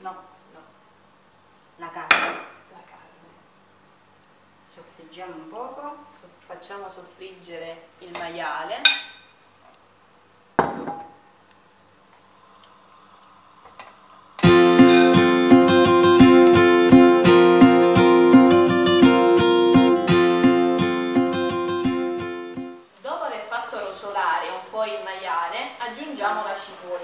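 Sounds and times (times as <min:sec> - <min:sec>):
acoustic guitar music: 0:14.4 - 0:22.8.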